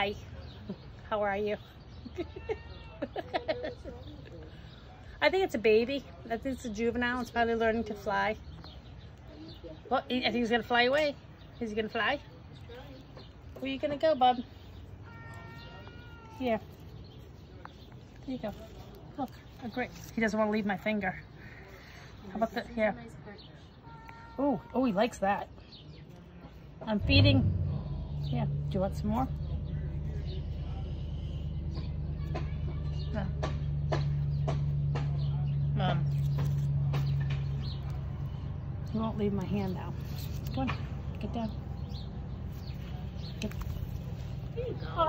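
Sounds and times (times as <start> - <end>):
outdoor background noise: 0.0 - 45.0
sparrow chirps: 0.0 - 45.0
steady low hum: 26.9 - 44.6.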